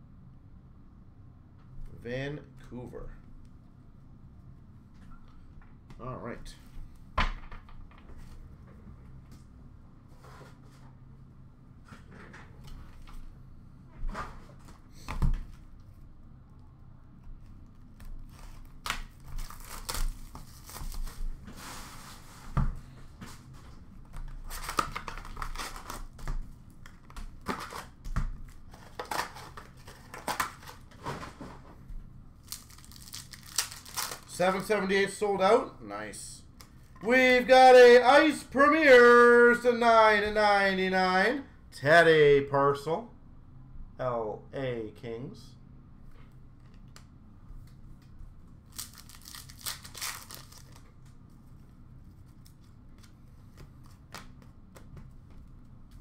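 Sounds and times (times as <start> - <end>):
foil wrapper crinkling and tearing: 18.0 - 21.4, 24.3 - 30.9, 32.4 - 34.7, 48.6 - 50.9.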